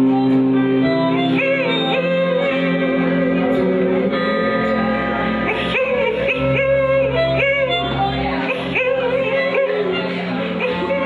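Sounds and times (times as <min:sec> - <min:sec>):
electric guitar: 0:00.0 - 0:11.0
low held drone: 0:00.0 - 0:11.0
person singing yodel-like notes: 0:00.0 - 0:11.0.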